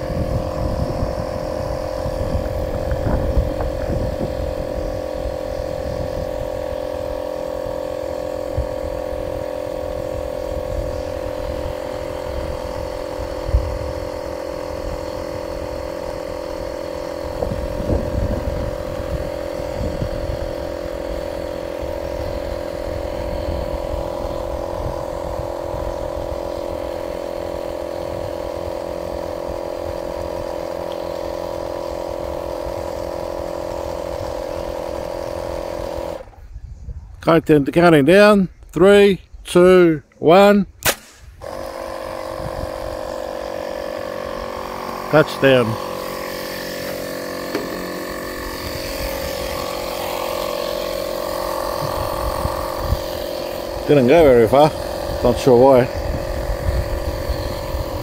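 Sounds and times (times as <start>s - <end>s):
wind on microphone: 0.0s - 30.7s, 31.4s - 37.9s, 41.1s - 43.3s, 48.3s - 49.9s, 51.6s - 58.0s
air compressor whining: 0.0s - 58.0s.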